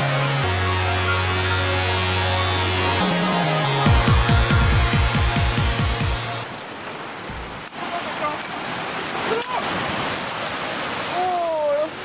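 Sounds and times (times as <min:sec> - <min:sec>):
electronic dance music: 0:00.0 - 0:06.4
river water rushing: 0:00.0 - 0:12.0.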